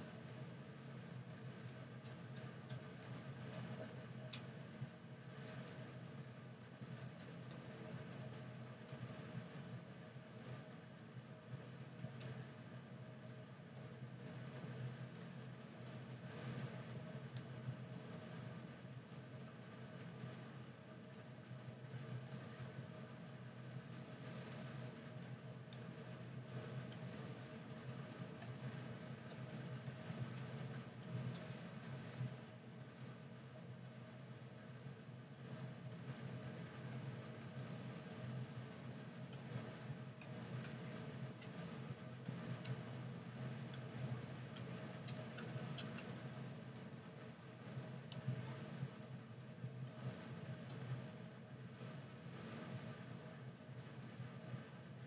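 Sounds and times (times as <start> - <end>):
low steady hum: 0.0 - 55.0
faint clicks: 7.1 - 9.7, 14.2 - 14.9, 24.1 - 25.9, 26.5 - 32.3.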